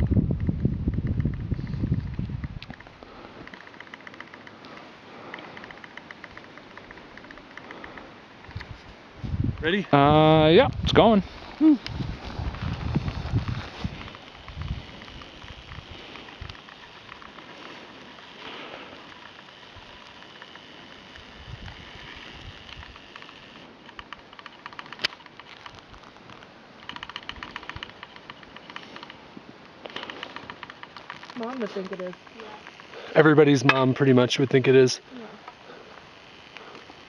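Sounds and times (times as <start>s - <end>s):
wind buffeting microphone: 0.0s - 3.0s, 8.5s - 16.9s
rapid fine crackle: 11.1s - 33.3s.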